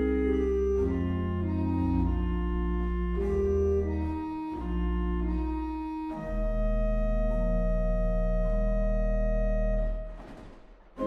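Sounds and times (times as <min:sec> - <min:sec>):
pipe organ chord: 0:00.0 - 0:10.2.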